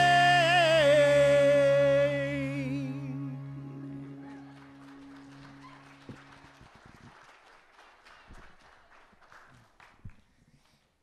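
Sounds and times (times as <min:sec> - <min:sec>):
held music chord: 0:00.0 - 0:06.7.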